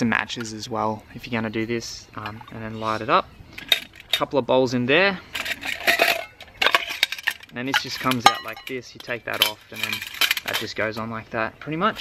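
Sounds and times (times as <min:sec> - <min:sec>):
metal pots clinking and scraping: 0:00.0 - 0:04.4, 0:05.2 - 0:11.2.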